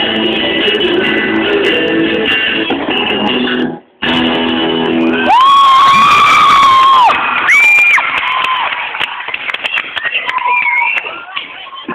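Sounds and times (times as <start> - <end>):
audience screaming: 5.2 - 9.0
clapping and cheering: 5.3 - 11.9.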